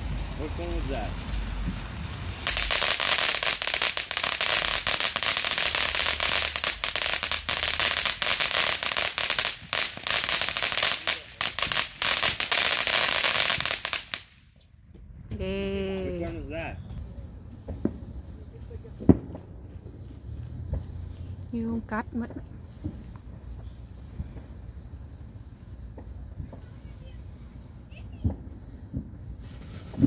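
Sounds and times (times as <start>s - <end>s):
firework fountain hissing and crackling: 0.0s - 14.6s, 15.4s - 30.0s.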